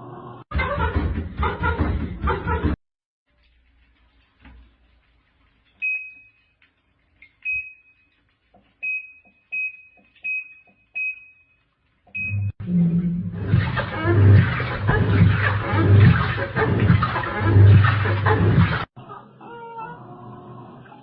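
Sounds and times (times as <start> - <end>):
washing machine low hum: 12.1 - 18.9.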